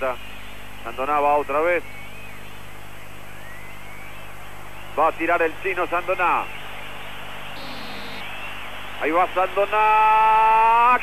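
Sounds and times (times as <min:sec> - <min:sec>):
broadcast hiss and hum: 0:00.0 - 0:11.0
faint stadium crowd: 0:00.0 - 0:11.0.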